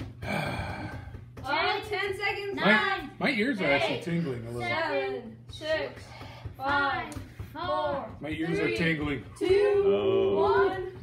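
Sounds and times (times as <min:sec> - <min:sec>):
steady low hum: 0:00.0 - 0:11.0
breathy vocal sound: 0:00.2 - 0:01.2.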